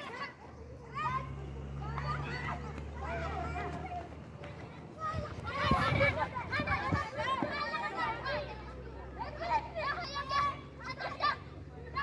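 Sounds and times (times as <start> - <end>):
children shouting at play: 0.0 - 12.0.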